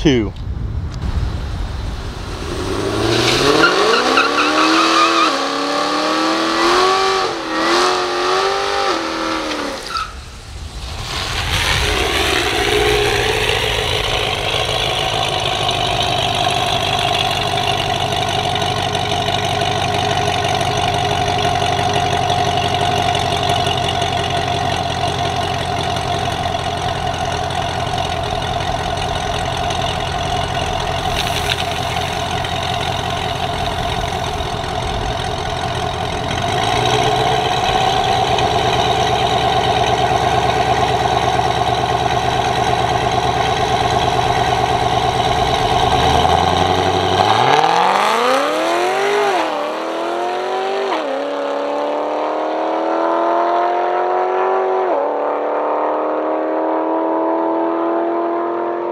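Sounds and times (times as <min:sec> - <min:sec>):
car engine idling: 0:00.9 - 0:49.2.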